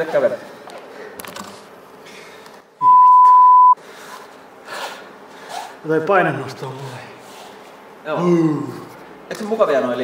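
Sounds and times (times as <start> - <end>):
censor bleep: 2.8 - 3.8.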